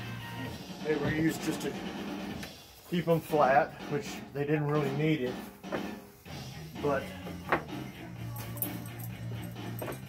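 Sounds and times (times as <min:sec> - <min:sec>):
background music: 0:00.0 - 0:10.0
wooden block knocking on workbench: 0:07.4 - 0:07.7.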